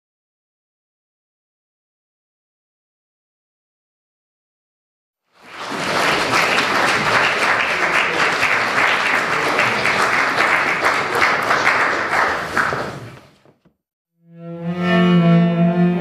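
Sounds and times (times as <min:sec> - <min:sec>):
audience applauding: 0:05.3 - 0:13.3.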